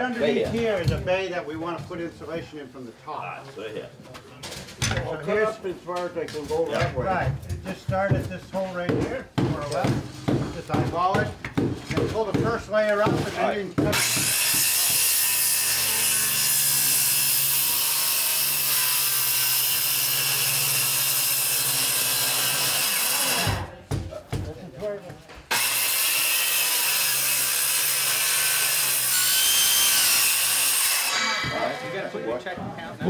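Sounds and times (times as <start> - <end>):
circular saw cutting wood: 13.9 - 23.7, 25.5 - 32.5.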